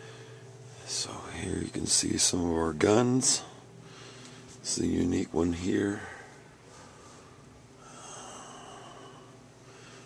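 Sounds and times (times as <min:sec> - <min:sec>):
faint breath: 0:00.0 - 0:00.8, 0:03.5 - 0:04.6, 0:06.0 - 0:10.0.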